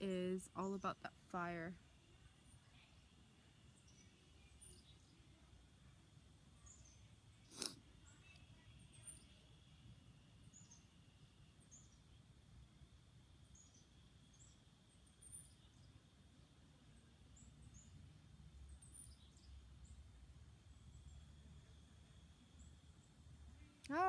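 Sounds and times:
small bird chirping: 2.0 - 5.6, 6.5 - 12.4, 13.4 - 24.0.

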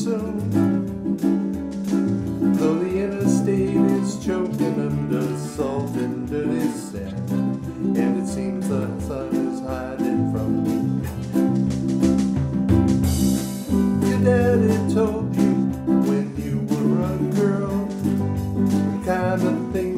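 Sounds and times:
drum kit steady beat: 0.0 - 19.9
electric bass line: 0.0 - 19.9
ukuleles strummed: 0.0 - 19.9.

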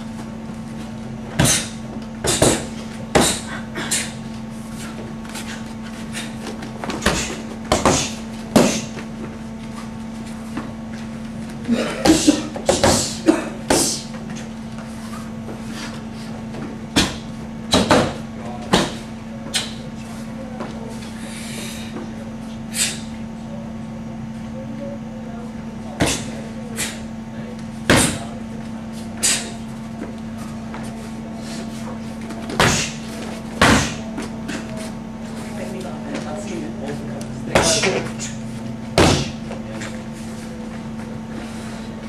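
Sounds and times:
kicks slapping paddle targets: 16.9 - 19.0, 33.6 - 34.0, 38.9 - 39.6.

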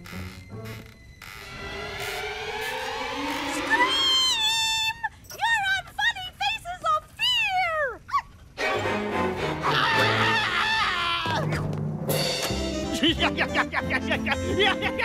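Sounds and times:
dramatic music: 0.1 - 4.9
high-pitched cartoon voice shrieking: 3.5 - 5.6
cartoon cackles: 9.6 - 11.6.

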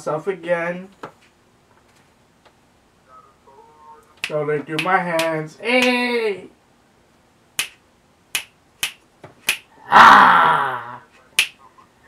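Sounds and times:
sharp finger snaps: 7.6 - 9.7, 11.4 - 11.6.

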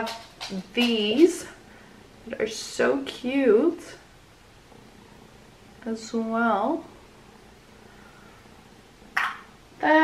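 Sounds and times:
woman speaking: 0.0 - 1.6, 2.2 - 4.1, 5.8 - 7.0, 9.8 - 10.0
faint background hum: 0.0 - 10.0.

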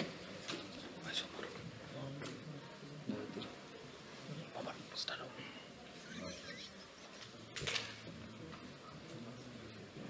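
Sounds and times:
quiet indistinct talking: 0.0 - 10.0.

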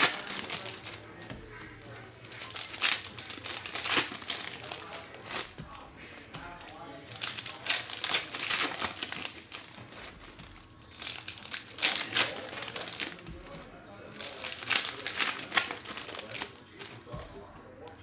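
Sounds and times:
foil wrappers crinkling: 0.0 - 18.0.

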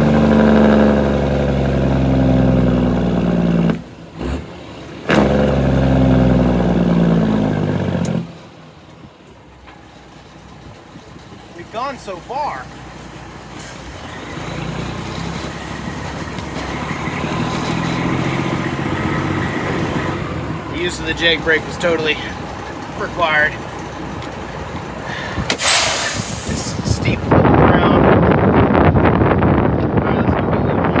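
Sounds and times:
truck engine low rumble: 0.0 - 31.0
truck engine brake rattling: 25.4 - 26.8
brief hiss: 25.5 - 26.8.

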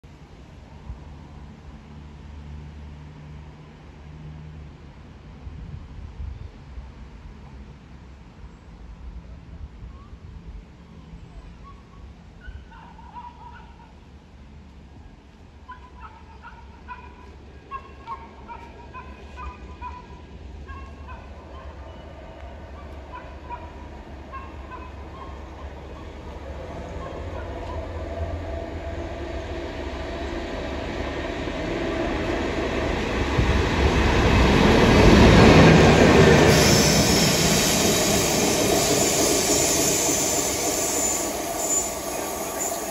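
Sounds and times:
diesel locomotive engine rumble: 0.1 - 42.9
bird calling: 15.7 - 28.0
train wheels on rails: 17.1 - 42.9.

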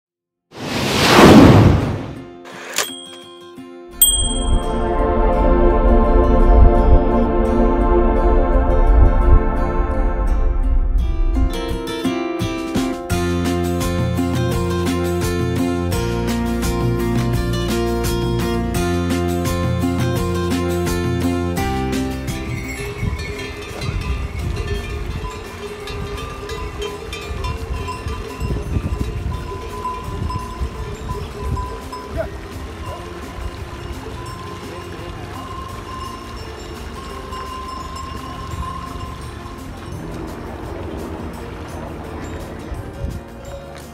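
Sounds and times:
whoosh: 0.5 - 2.2
bright chime: 2.7 - 5.1, 22.6 - 43.9
animal bells jangling: 2.8 - 4.9, 22.3 - 43.9
ding: 2.8 - 5.0.

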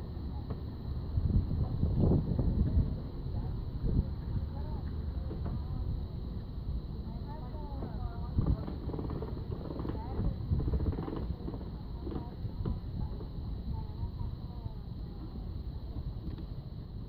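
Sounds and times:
steady low rumble: 0.0 - 17.0
people talking: 0.2 - 16.9.

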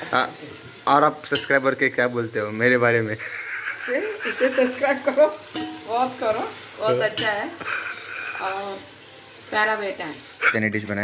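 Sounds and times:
food sizzling in a pan: 0.0 - 11.0
chatter: 2.7 - 11.0
woman laughing: 3.2 - 5.4.

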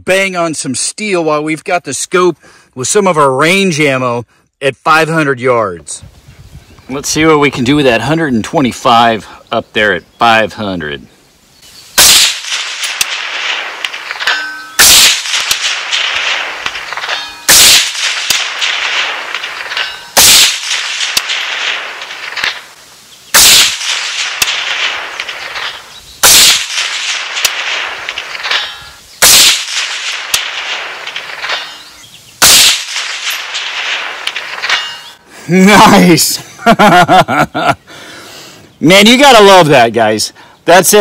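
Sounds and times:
rifle shots with echo: 12.0 - 35.2.

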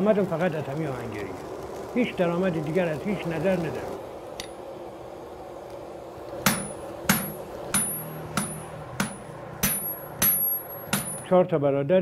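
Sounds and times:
hammer striking iron on anvil: 6.4 - 11.3.

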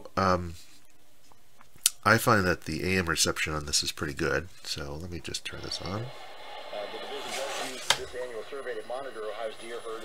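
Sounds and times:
static hiss: 5.1 - 10.0
tinny radio voice: 5.4 - 10.0.

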